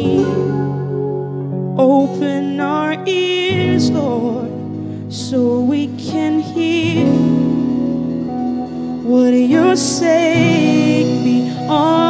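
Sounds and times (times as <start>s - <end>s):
keyboard and electric guitar: 0.0s - 12.0s
woman singing with vibrato: 9.1s - 12.0s.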